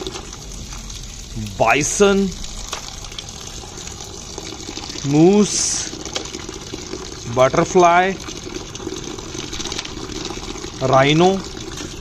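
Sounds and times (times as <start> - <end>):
water pouring into a basin: 0.0 - 12.0.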